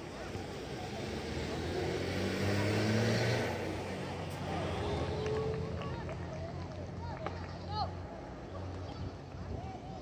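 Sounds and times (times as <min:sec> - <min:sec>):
vehicle passing by: 0:00.0 - 0:08.0.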